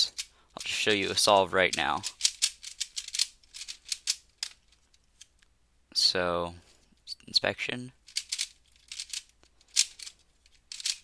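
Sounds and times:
puzzle cube plastic clicks: 0.0 - 5.5, 8.0 - 11.0.

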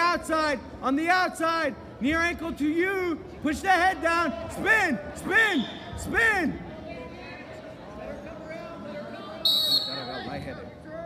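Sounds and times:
spectators talking: 0.0 - 11.0
referee's whistle blast: 9.5 - 10.3.

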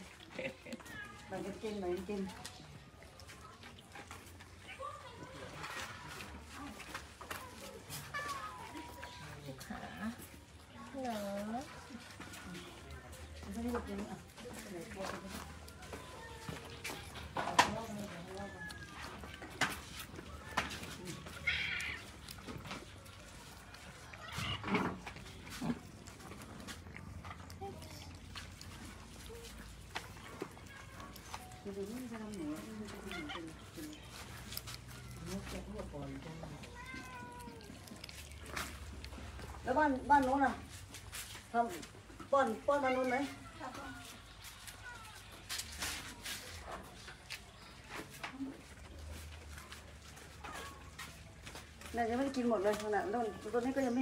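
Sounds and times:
cat meowing: 21.3 - 22.4, 24.2 - 24.8, 36.7 - 38.1.

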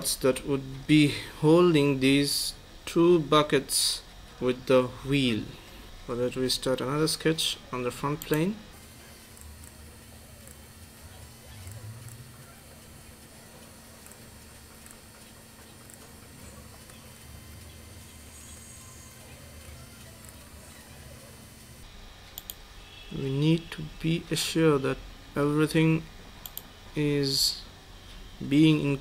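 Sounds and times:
faint hum with hiss: 0.0 - 29.0
faint clicks: 22.4 - 22.6, 26.4 - 26.7.

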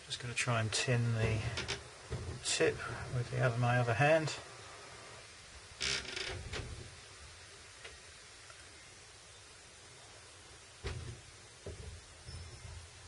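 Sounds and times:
faint room hiss: 0.0 - 13.0
soft handling knocks and rubs: 1.0 - 3.5, 10.8 - 13.0.

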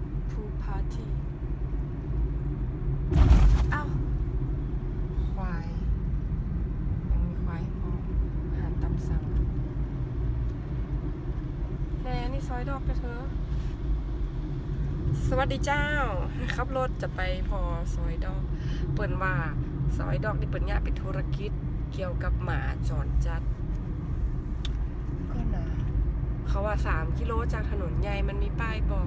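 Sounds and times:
car engine and tyre noise: 0.0 - 29.0.

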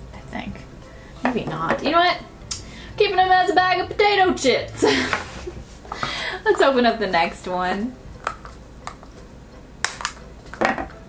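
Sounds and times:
plastic capsule clicking: 9.8 - 10.2.

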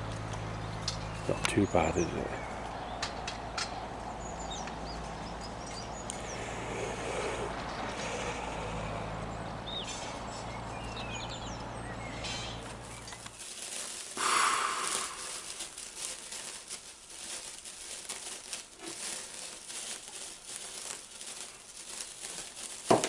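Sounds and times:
birds chirping: 0.0 - 17.6
sparkler fizzing and crackling: 14.1 - 15.8.

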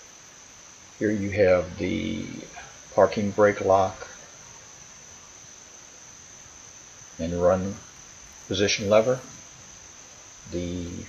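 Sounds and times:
crickets trilling: 0.0 - 11.0
faint outdoor ambience: 0.0 - 11.0.

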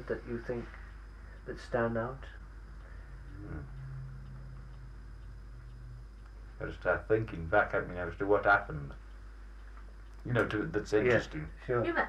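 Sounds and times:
low hum: 0.0 - 12.0
faint ticks: 0.6 - 11.9.

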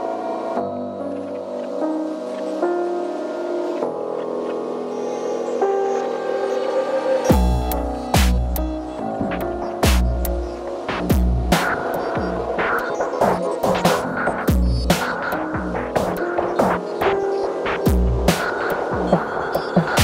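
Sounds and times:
synth and piano chords: 0.0 - 20.0
syncopated electronic drum pattern: 7.3 - 20.0.

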